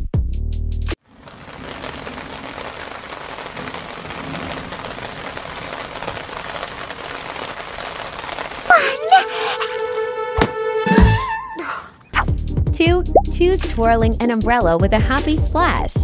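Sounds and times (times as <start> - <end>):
steady rain falling: 1.0 - 10.1.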